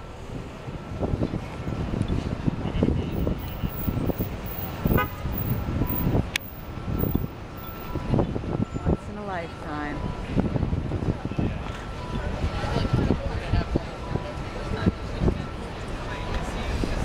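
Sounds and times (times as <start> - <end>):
city street traffic: 0.0 - 17.0
car horn toot: 3.2 - 6.2.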